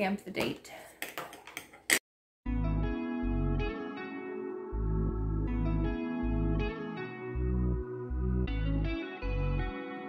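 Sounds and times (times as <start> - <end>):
music with pulsing bass: 2.5 - 9.8.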